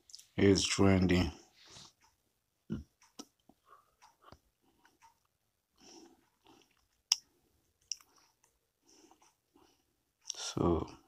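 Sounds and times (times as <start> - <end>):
mouth noises and breaths: 1.4 - 10.4.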